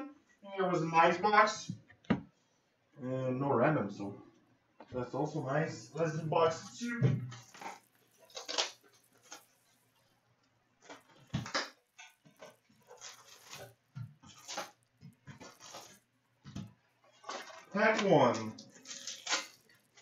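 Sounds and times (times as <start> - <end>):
card packs rustling and scraping: 5.2 - 10.2, 10.8 - 20.0.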